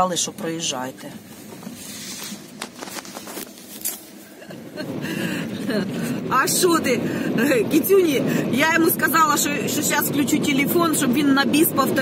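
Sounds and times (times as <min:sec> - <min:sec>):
car engine running: 0:00.0 - 0:12.0.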